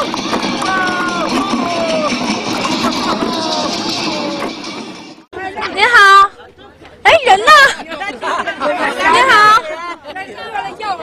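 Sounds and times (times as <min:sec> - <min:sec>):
crowd chatter: 0:00.0 - 0:11.0
people talking: 0:05.4 - 0:11.0.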